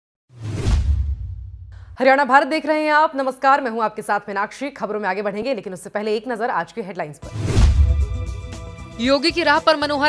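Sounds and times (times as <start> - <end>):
whoosh with deep boom: 0.3 - 2.0, 7.4 - 8.3.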